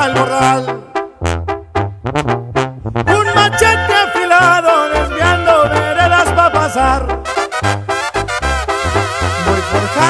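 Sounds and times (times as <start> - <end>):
brass section playing short notes: 0.0 - 10.0
low bass line: 0.0 - 10.0.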